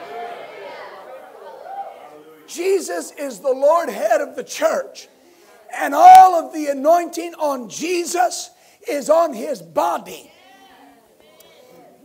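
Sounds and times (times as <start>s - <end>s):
congregation talking indistinctly: 0.0s - 12.0s.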